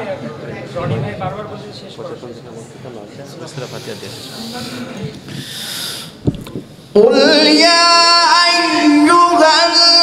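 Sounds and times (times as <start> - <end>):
faint murmur: 0.0 - 6.2
thump on microphone: 6.2 - 6.7.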